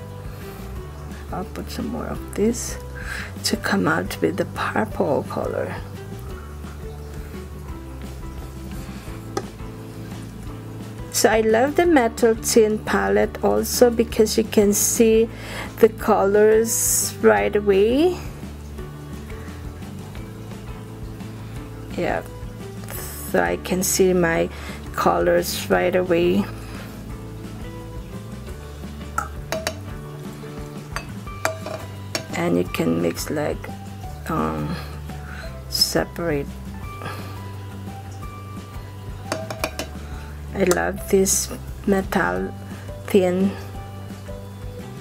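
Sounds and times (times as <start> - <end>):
quiet background music: 0.0 - 45.0
paintbrush knocking metal palette: 29.2 - 29.9, 30.9 - 32.4, 39.3 - 40.0.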